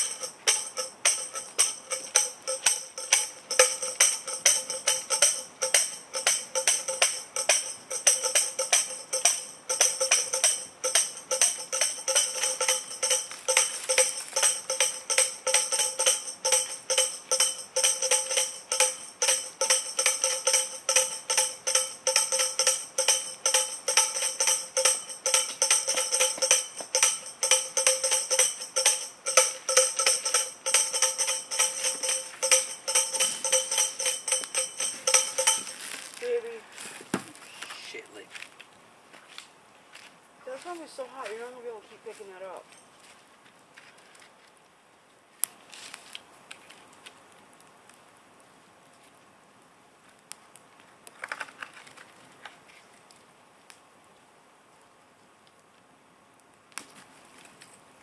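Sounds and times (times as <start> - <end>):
tambourine jingling: 0.0 - 36.2.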